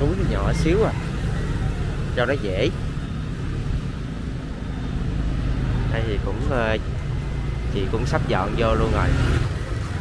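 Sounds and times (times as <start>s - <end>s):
motorbike rumble: 0.0s - 10.0s
street traffic: 0.0s - 10.0s.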